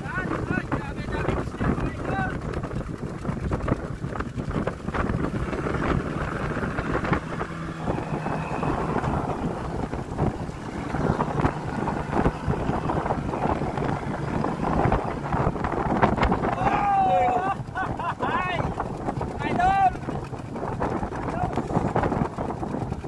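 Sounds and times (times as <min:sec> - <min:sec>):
wind buffeting microphone: 0:00.0 - 0:23.0
water splashing: 0:01.6 - 0:23.0.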